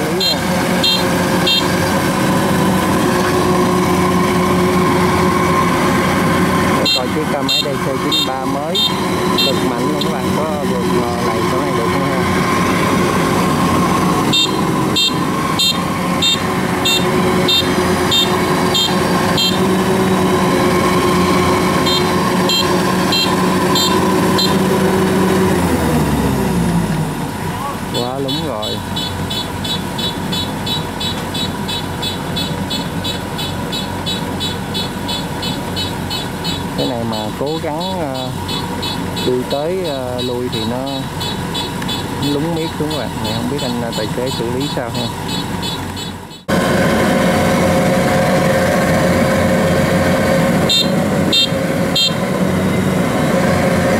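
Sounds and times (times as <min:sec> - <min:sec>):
people's voices: 0:00.0 - 0:01.1, 0:06.7 - 0:12.4, 0:27.4 - 0:28.9, 0:36.8 - 0:38.4, 0:39.2 - 0:41.2, 0:42.2 - 0:45.3
diesel engine running hard: 0:00.0 - 0:53.9
fast high ticking: 0:28.0 - 0:46.5.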